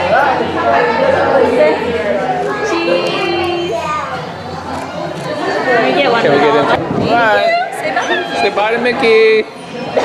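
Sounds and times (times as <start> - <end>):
people talking: 0.0 - 9.1.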